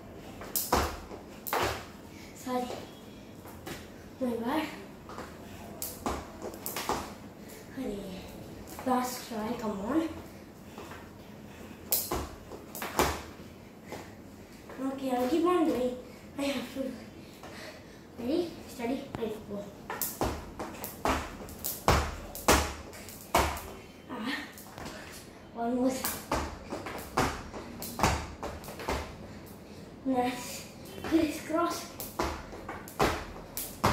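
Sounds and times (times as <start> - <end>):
skipping rope slapping tiled floor: 0.4 - 1.9, 5.8 - 7.1, 11.9 - 13.3, 19.9 - 23.7, 25.9 - 29.2, 31.0 - 33.9
feet landing: 11.9 - 14.1, 32.1 - 33.9.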